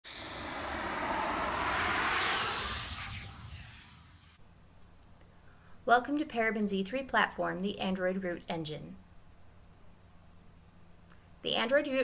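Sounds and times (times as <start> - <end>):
whoosh: 0.0 - 4.4.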